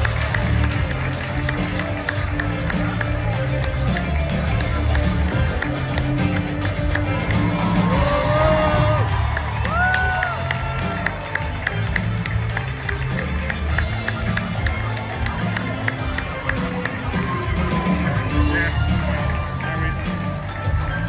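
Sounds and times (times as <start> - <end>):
audience clapping and cheering: 0.0 - 21.0
live band playing: 0.0 - 21.0.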